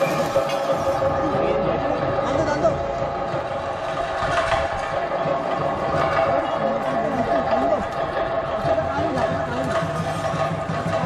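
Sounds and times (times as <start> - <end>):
men calling and talking: 0.0 - 11.0
steady droning tone: 0.0 - 11.0.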